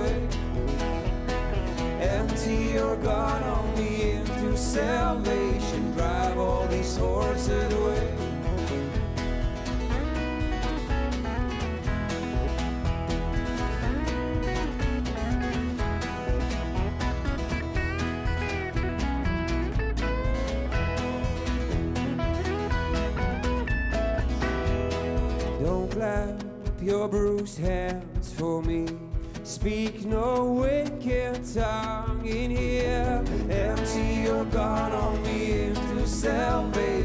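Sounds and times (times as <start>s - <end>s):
electric guitar: 0.0s - 26.8s, 31.3s - 37.0s
live rock band instrumental: 0.0s - 28.3s, 28.9s - 37.0s
strummed acoustic guitar: 0.0s - 37.0s.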